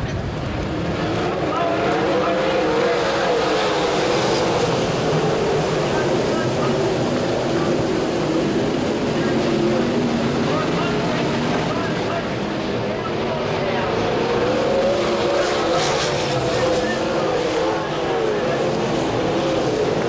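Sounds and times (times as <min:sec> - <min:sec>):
racing car engines: 0:00.0 - 0:20.0.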